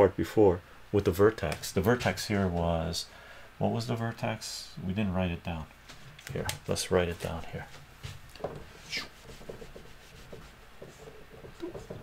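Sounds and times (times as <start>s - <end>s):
whiteboard eraser rubbing: 8.6s - 12.0s.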